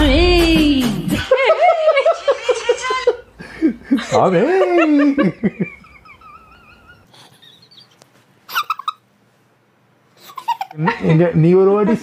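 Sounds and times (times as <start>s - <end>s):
man and woman laughing: 1.2s - 7.9s, 8.5s - 9.0s, 10.3s - 11.1s.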